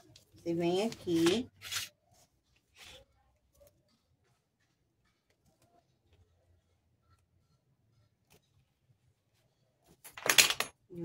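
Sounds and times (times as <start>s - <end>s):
faint handling sounds: 0.0s - 10.3s.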